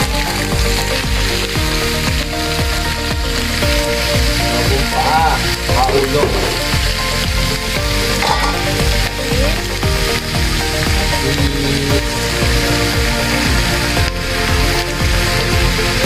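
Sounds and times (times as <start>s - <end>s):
background music: 0.0s - 16.0s
meat sizzling in a pan: 0.0s - 16.0s.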